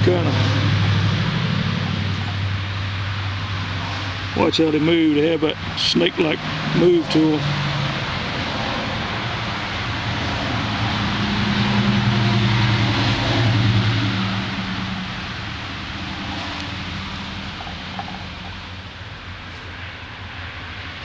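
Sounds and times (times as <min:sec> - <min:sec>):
motor vehicle passing: 0:00.0 - 0:21.0.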